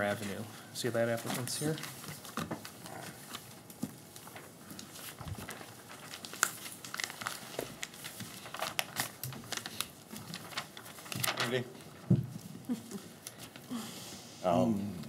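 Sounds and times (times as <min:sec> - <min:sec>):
paper rustling: 0:01.0 - 0:13.7.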